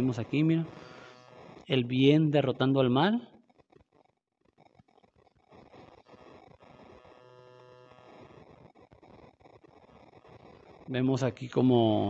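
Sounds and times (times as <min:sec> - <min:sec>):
low hum of steady tones: 0:00.0 - 0:03.2.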